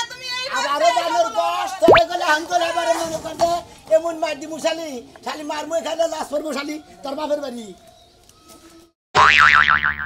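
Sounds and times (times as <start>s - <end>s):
comic boing sound effect: 9.2s - 10.0s.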